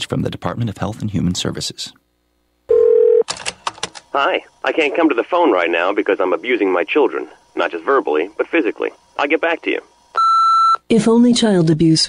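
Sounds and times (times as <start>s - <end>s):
telephone tone: 2.7s - 3.3s, 10.2s - 10.8s.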